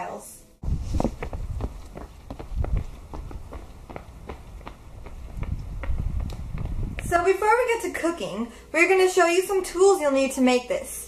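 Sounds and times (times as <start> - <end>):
running footsteps on concrete: 0.6 - 7.7.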